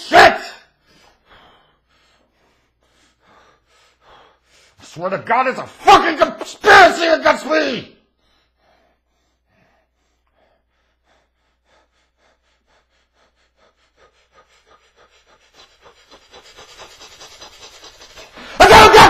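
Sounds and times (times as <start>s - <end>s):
man shouting loudly: 0.0s - 0.7s, 5.0s - 8.0s, 18.6s - 19.0s
man panting heavily: 0.0s - 6.0s, 8.0s - 19.0s.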